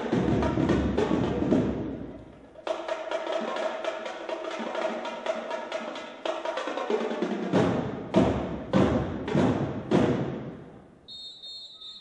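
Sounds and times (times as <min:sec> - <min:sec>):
drumline unison strokes: 0:00.0 - 0:10.8
steady high whistle: 0:11.1 - 0:12.0.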